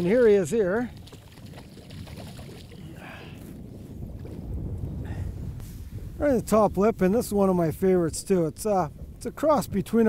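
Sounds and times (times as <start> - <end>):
water lapping against boat: 0.0 - 4.4
wind rumbling on microphone: 0.0 - 10.0.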